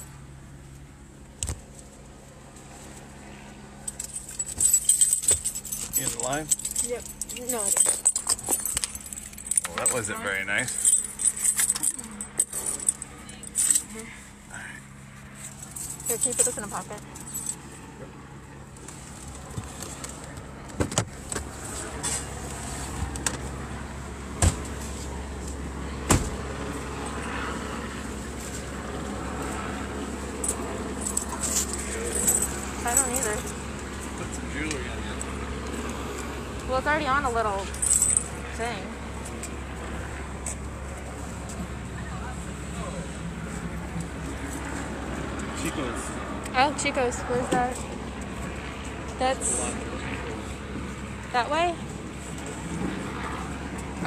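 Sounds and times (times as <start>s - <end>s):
engine and road rumble: 0.0s - 54.0s
rattling and clicking in car: 3.9s - 14.0s, 15.6s - 17.6s.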